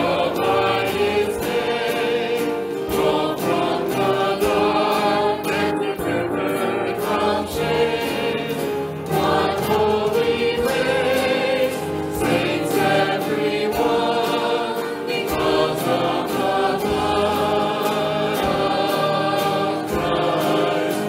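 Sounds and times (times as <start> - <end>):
group singing: 0.0 - 21.0
strummed acoustic guitar: 0.0 - 21.0.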